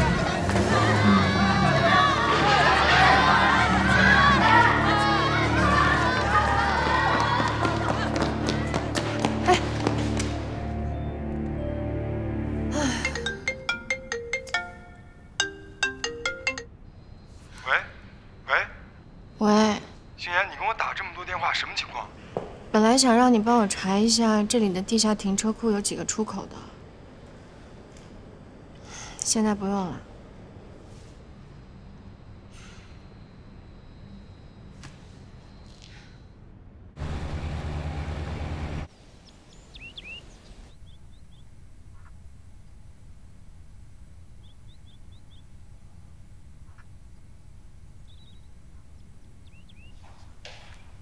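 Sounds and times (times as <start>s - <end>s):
boats on river rumbling: 0.0s - 7.9s, 37.0s - 39.0s
plinking ringtone melody: 12.8s - 16.8s
bird chirping: 39.0s - 42.8s, 43.9s - 51.0s.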